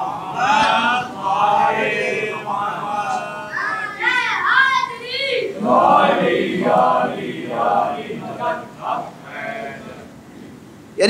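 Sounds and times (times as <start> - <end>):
low background sound: 0.0 - 11.0.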